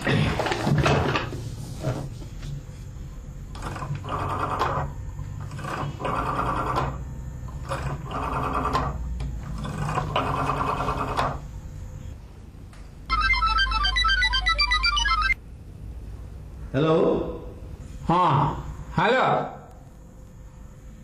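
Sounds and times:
rotary dial whirring: 0:02.6 - 0:12.1.

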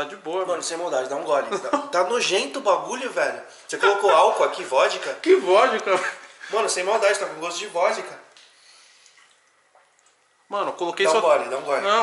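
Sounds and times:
man speaking: 0:00.0 - 0:08.3, 0:10.5 - 0:12.0.

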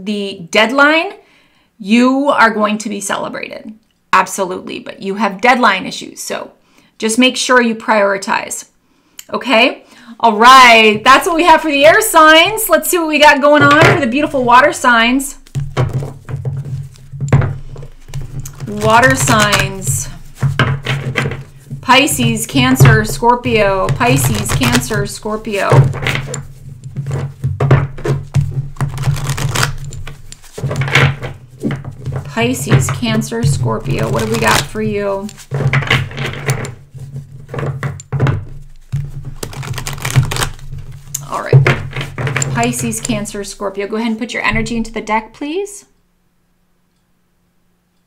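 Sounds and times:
cards being handled: 0:15.4 - 0:21.8, 0:25.7 - 0:32.9, 0:34.0 - 0:43.2.

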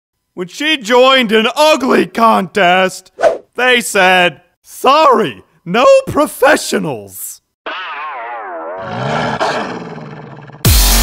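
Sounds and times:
cartoon woman growling: 0:07.7 - 0:10.7.

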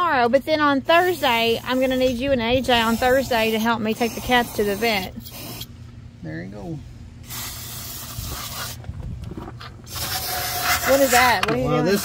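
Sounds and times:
aerosol can spraying: 0:02.8 - 0:05.7, 0:07.2 - 0:08.8, 0:09.9 - 0:12.0.

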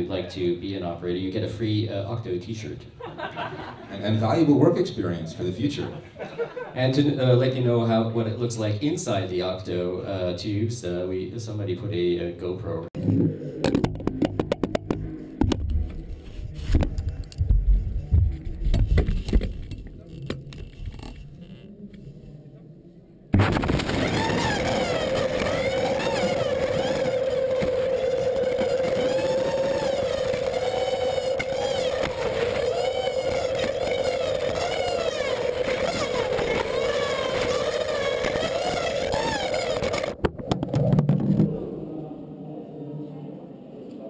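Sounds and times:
steady hum: 0:13.0 - 0:44.0
air rushing through tube: 0:23.4 - 0:42.6.

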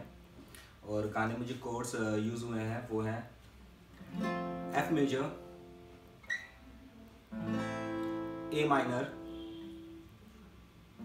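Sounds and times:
acoustic guitar chord ringing: 0:04.1 - 0:06.6, 0:07.3 - 0:10.2.

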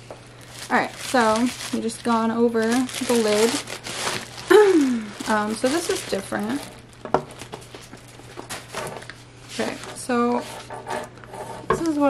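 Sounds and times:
paper rustling: 0:00.4 - 0:10.7.

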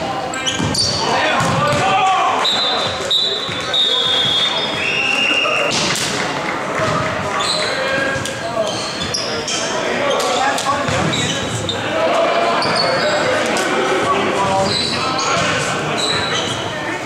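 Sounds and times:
players' voices: 0:00.0 - 0:17.0
shoes squeaking on gym floor: 0:00.3 - 0:01.1, 0:07.4 - 0:11.8, 0:14.5 - 0:16.8.

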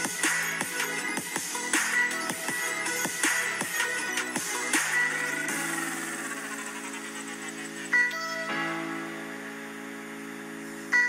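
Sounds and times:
electronic music with synth tones: 0:00.0 - 0:11.0.

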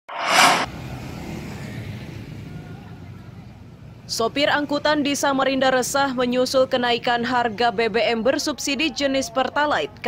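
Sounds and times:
loud rushing burst: 0:00.0 - 0:00.9
steady low rumble: 0:00.1 - 0:01.0.

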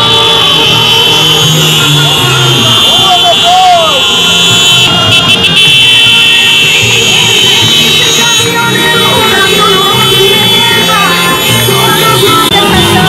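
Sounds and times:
crowd voices: 0:00.0 - 0:13.0
road traffic passing: 0:00.0 - 0:13.0.

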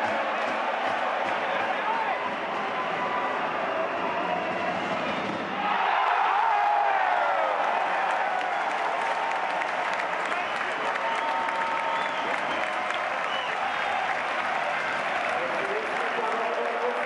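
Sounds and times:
crowd clapping: 0:00.0 - 0:04.3, 0:05.7 - 0:17.0
crowd shouting: 0:00.0 - 0:12.7.

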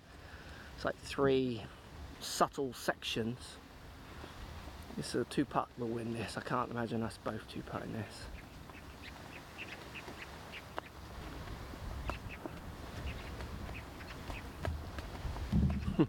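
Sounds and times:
bird calls: 0:05.9 - 0:16.0
wind rumble on microphone: 0:09.8 - 0:16.0.

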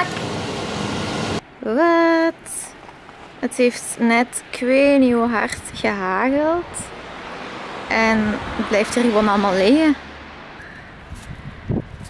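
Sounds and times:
wind on microphone: 0:04.8 - 0:07.1, 0:07.7 - 0:12.0.

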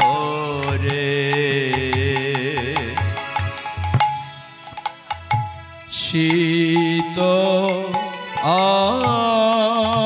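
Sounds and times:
man singing long notes: 0:00.0 - 0:03.3, 0:05.9 - 0:10.0
harmonium: 0:00.0 - 0:10.0
khol drum strokes: 0:02.0 - 0:07.2.

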